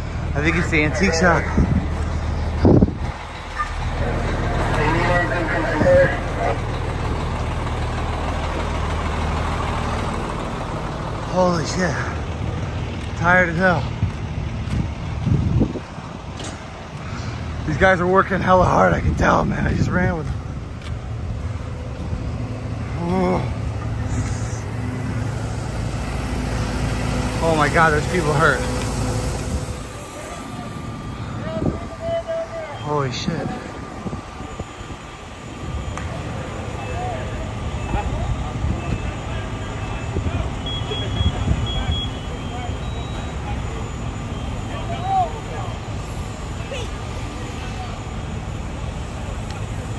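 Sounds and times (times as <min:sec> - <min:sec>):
distant voices calling: 0:00.0 - 0:15.2, 0:16.2 - 0:49.9
steady low rumble: 0:00.0 - 0:49.9
wind buffeting microphone: 0:01.2 - 0:04.0, 0:13.8 - 0:17.9, 0:33.4 - 0:36.4
high beeps: 0:39.8 - 0:46.0.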